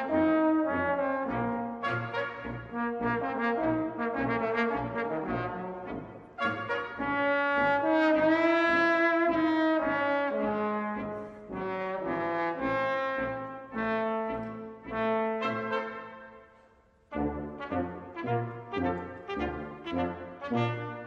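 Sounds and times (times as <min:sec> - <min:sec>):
brass ensemble with trombones: 0:00.0 - 0:21.0.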